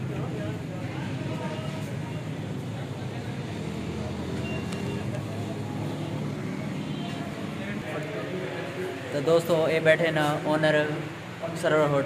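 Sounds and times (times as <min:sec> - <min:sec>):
low rumble of vehicle noise: 0:00.0 - 0:12.0.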